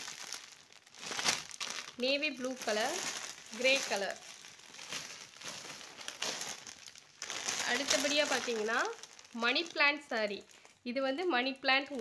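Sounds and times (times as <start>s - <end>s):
plastic packets crinkling: 0.0s - 12.0s.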